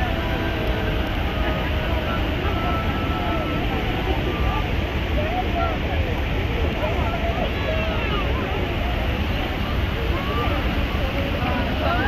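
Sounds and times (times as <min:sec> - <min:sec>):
faint voices of people: 0:00.0 - 0:12.0.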